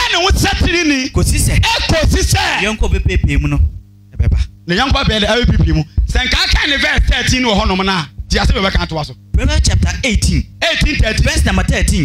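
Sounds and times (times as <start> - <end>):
man preaching into a microphone: 0.0 - 3.6, 4.7 - 12.0.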